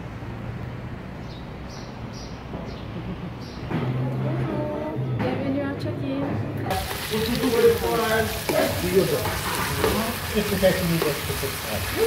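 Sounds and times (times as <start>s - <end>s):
chicken sizzling in a frying pan: 6.7s - 12.0s.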